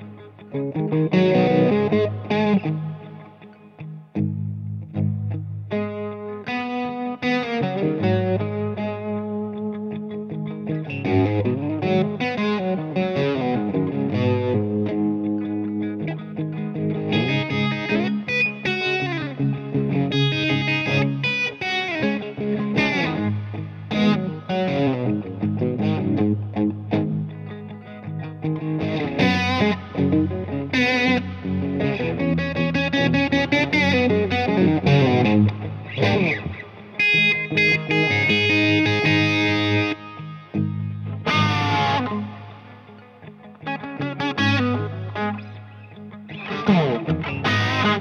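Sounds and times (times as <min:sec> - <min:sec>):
electric guitar blues lead: 0:00.0 - 0:48.0.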